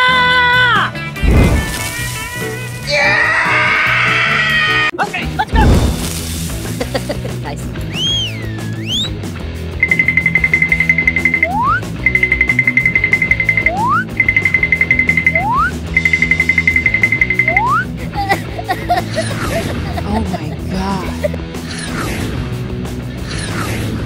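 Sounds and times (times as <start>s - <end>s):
background music: 0.0s - 24.0s
swooping whistle: 7.9s - 9.2s, 9.8s - 17.9s.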